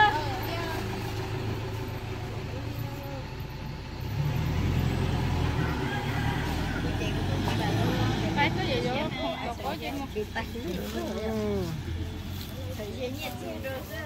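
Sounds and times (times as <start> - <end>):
diesel engine idling: 0.0 - 14.0
truck pulling away: 0.0 - 14.0.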